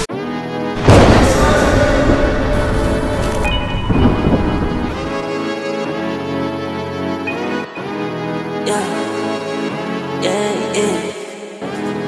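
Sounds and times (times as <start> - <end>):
sustained background music chord: 0.0 - 12.0
thunder rumbling: 0.8 - 5.4.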